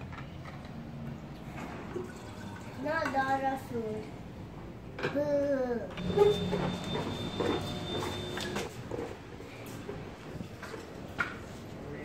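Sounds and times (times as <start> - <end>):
drink pouring from a jug: 1.4 - 2.8.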